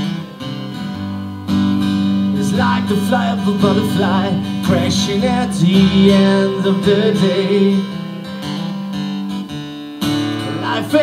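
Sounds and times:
acoustic guitar strummed softly: 0:00.0 - 0:11.0.

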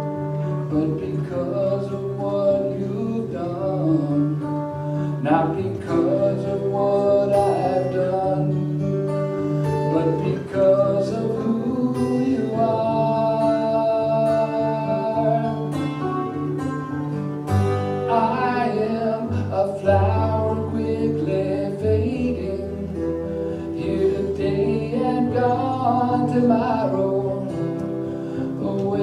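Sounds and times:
strummed acoustic guitar: 0:00.0 - 0:29.0
man singing: 0:00.4 - 0:16.6, 0:18.0 - 0:29.0.

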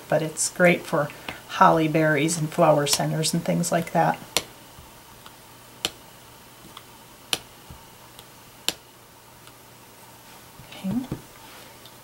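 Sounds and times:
rubber stamp tapping on paper: 0:06.6 - 0:08.8.

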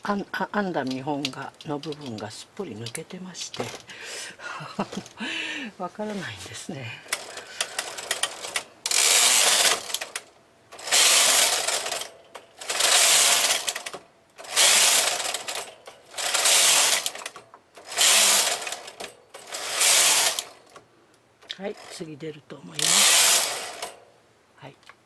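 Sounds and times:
clicks: 0:00.7 - 0:04.0
knitting machine carriage sliding: 0:07.1 - 0:20.8, 0:22.8 - 0:24.1.

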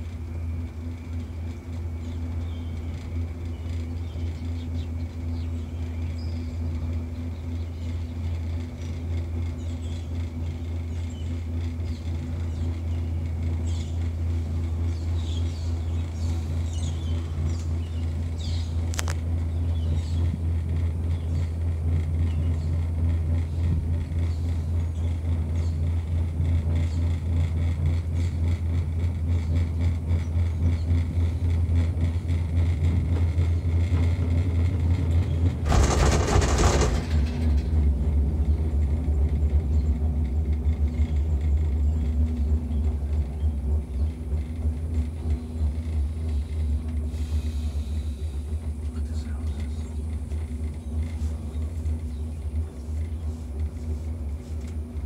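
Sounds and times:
gondola cabin rumbling: 0:00.0 - 0:55.0
loud clattering rattle: 0:06.8 - 0:42.4.

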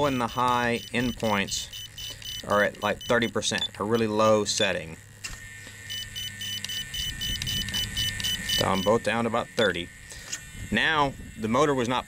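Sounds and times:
short high beeps: 0:00.0 - 0:03.4, 0:05.9 - 0:09.0.

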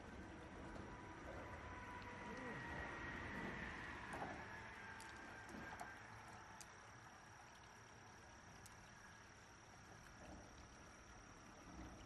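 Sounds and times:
faint small clicks: 0:08.6 - 0:08.9.

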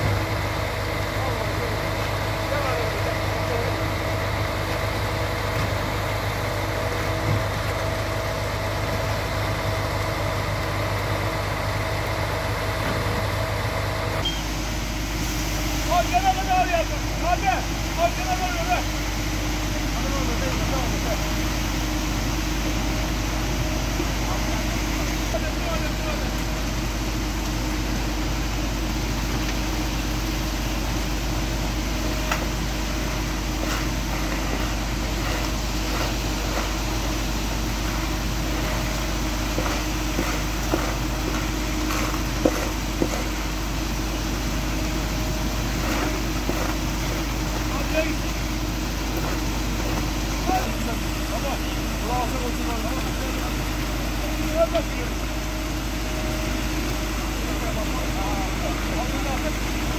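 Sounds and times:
concrete mixer truck running: 0:00.0 - 0:59.9
shovels scraping wet concrete: 0:32.3 - 0:43.7, 0:44.9 - 0:48.4, 0:49.0 - 0:50.8.

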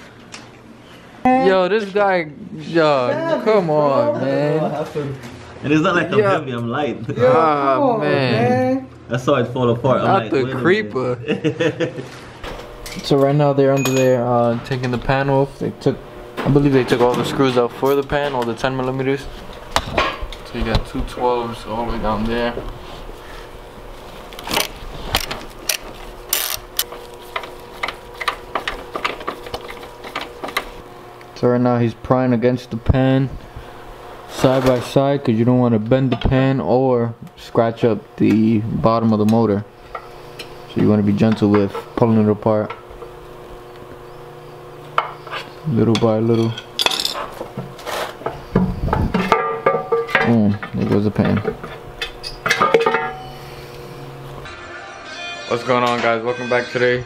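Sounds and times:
hand ratchet clicking: 0:25.2 - 0:26.9.

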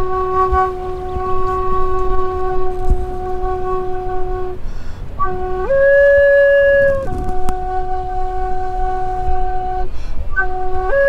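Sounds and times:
wooden flute long notes: 0:00.0 - 0:11.0.

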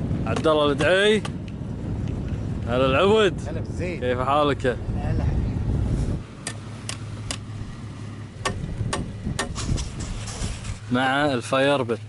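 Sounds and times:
low steady hum: 0:01.2 - 0:12.0.

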